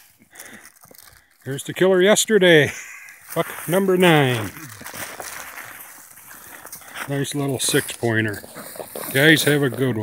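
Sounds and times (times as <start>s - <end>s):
light crackles: 0.0s - 1.9s.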